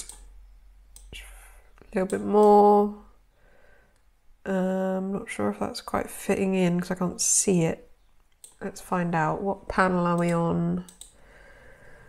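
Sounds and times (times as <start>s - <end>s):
sharp click: 0.0s - 0.3s
soft intake of breath: 3.3s - 4.0s, 11.2s - 12.0s.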